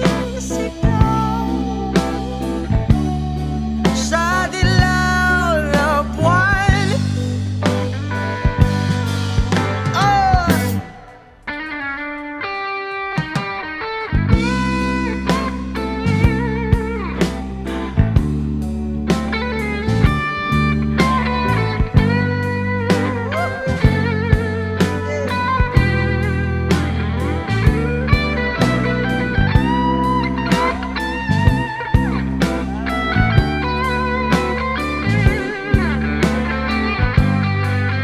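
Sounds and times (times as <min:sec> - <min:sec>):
bass line: 0:00.0 - 0:11.9, 0:14.1 - 0:38.0
electric guitar solo: 0:00.0 - 0:38.0
drum beat: 0:22.9 - 0:27.0.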